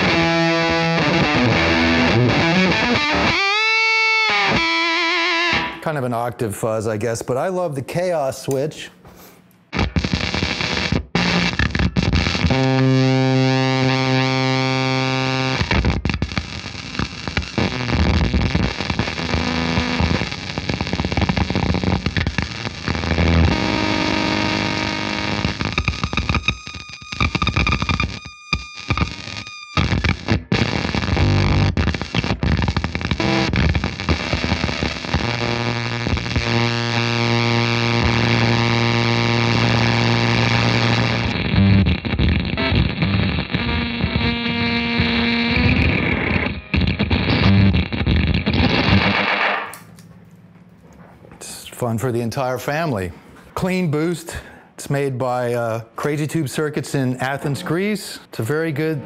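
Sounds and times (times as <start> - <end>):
fuzz electric guitar held notes: 0.0 - 5.8, 9.7 - 50.2.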